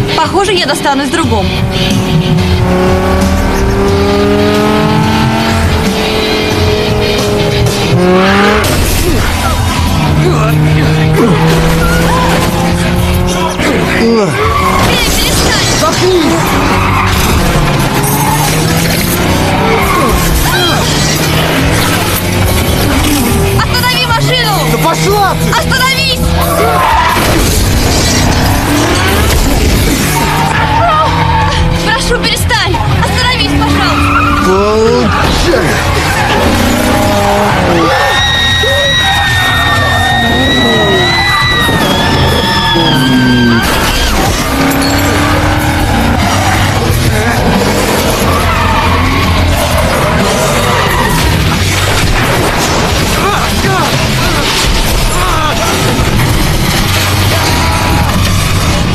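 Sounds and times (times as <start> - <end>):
car engines running hard: 0.0 - 58.9
tyre squeal: 11.2 - 12.6, 33.6 - 51.4.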